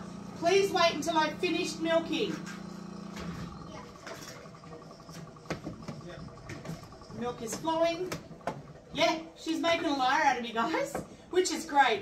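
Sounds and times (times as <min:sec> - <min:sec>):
milking machine pulsing: 0:00.0 - 0:11.7.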